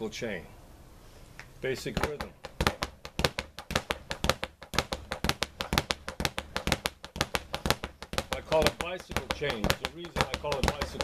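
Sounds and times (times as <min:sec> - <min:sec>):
speed bag rapid knocking: 0:02.0 - 0:11.0.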